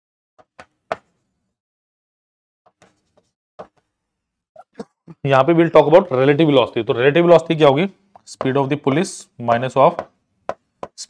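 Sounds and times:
marker tapping on whiteboard: 0:00.4 - 0:01.2, 0:08.1 - 0:08.6, 0:09.5 - 0:11.0.

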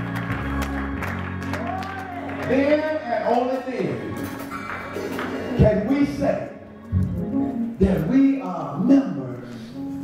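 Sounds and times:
congregation clapping: 0:00.0 - 0:06.0
sustained low chords: 0:06.5 - 0:08.2.

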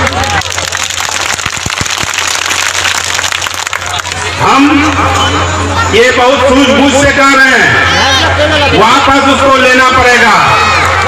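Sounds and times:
crowd clapping: 0:00.0 - 0:05.2, 0:10.6 - 0:11.0.

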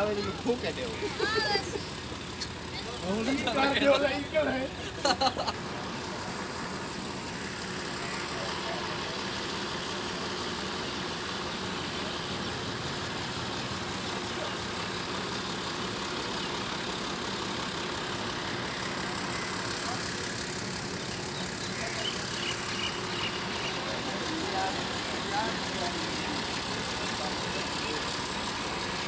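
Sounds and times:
diesel engine idling: 0:00.0 - 0:29.0.

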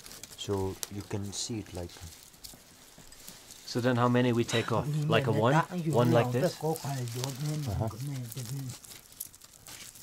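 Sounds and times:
dried roots crinkling: 0:00.0 - 0:10.0
person speaking: 0:03.7 - 0:08.8.

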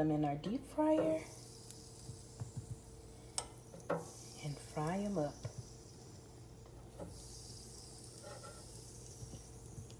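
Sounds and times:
faint steady hum: 0:00.0 - 0:09.9.

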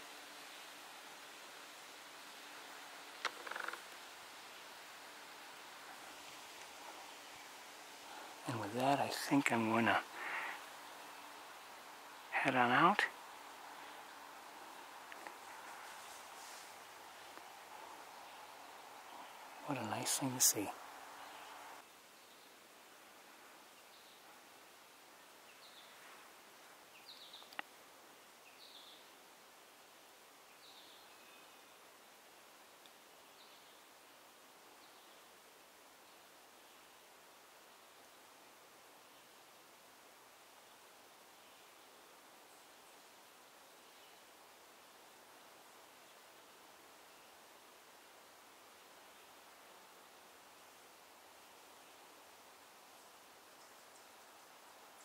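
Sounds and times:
low forest hiss: 0:00.0 - 0:55.0.

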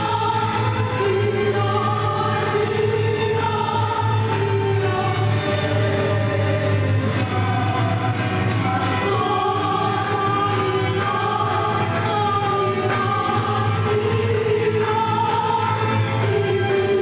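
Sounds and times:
guitars: 0:00.0 - 0:17.0
woman singing into microphone: 0:00.0 - 0:17.0.

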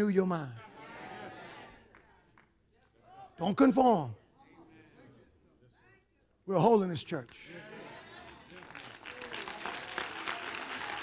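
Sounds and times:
congregation applauding: 0:08.0 - 0:11.0.

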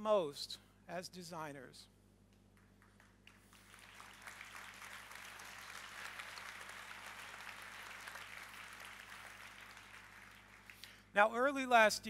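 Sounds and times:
audience applauding: 0:02.6 - 0:10.9.

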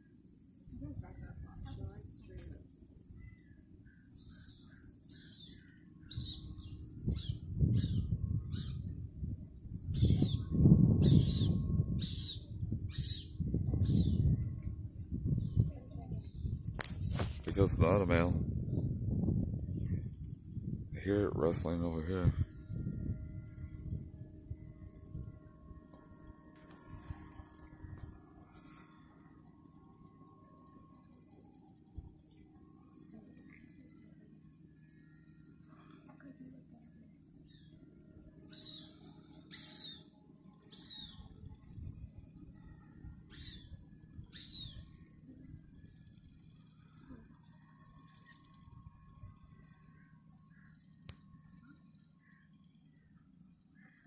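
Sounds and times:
faint bird chirps: 0:00.0 - 0:54.0
low steady hum: 0:00.0 - 0:54.0.

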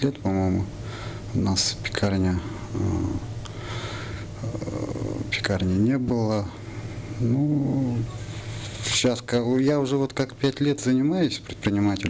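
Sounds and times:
steady low hum: 0:00.0 - 0:12.0
man breathing in: 0:00.8 - 0:01.3, 0:03.5 - 0:04.4
man talking: 0:01.3 - 0:03.3, 0:04.4 - 0:06.6, 0:07.2 - 0:12.0.

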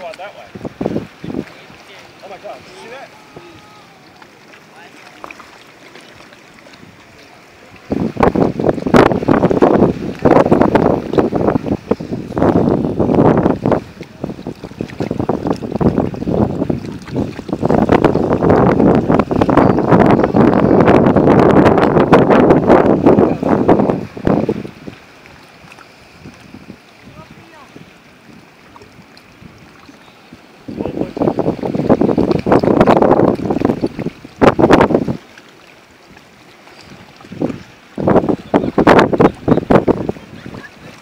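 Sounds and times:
wind buffeting microphone: 0:00.0 - 0:35.4, 0:36.0 - 0:41.0
water: 0:00.0 - 0:41.0.

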